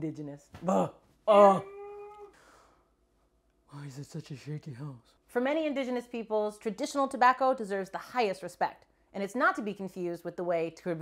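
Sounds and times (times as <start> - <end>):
woman's exasperated cry: 1.4 - 2.3.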